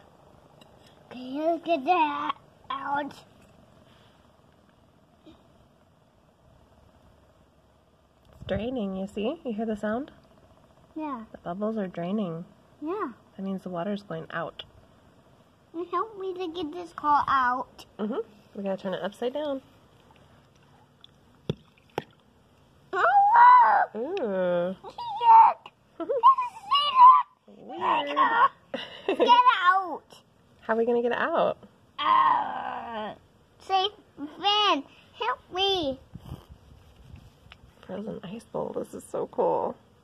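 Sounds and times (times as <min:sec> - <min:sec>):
water bubbling and trickling: 0:21.0 - 0:22.3.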